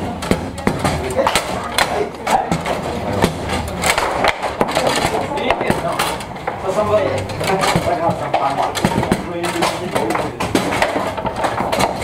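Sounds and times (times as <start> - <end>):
voices: 0.0 - 12.0
table football ball clacks: 7.4 - 12.0.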